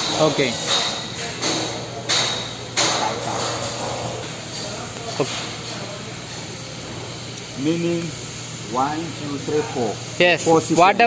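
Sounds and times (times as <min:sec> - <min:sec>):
compressed air hissing: 0:00.0 - 0:11.0.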